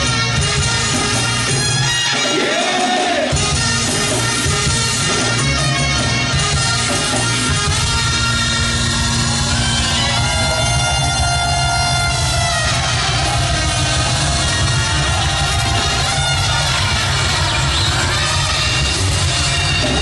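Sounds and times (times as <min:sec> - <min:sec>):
reggae band playing live: 0:00.0 - 0:20.0.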